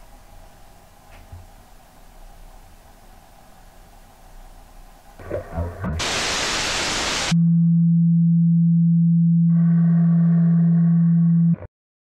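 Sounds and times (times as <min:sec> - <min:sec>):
white-noise static burst: 0:04.8 - 0:07.4
steady low electronic tone: 0:05.2 - 0:11.7.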